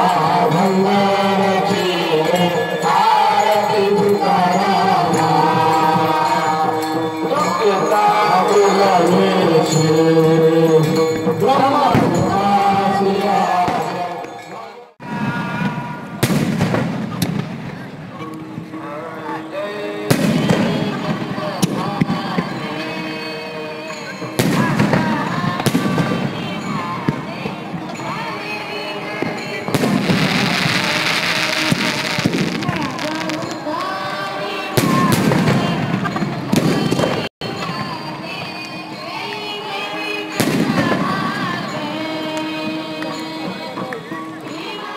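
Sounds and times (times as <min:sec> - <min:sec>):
fireworks crackling: 0:15.1 - 0:18.2, 0:24.4 - 0:27.4, 0:28.4 - 0:37.8
firework bang: 0:15.5 - 0:17.9, 0:29.8 - 0:33.6.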